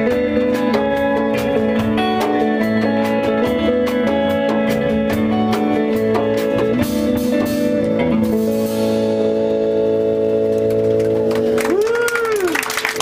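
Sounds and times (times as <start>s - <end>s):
audience applause: 10.6s - 13.0s.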